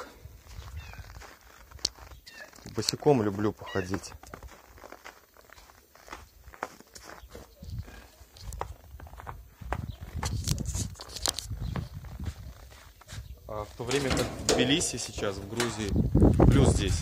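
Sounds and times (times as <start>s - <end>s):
footsteps crunching in snow: 0.0s - 14.0s.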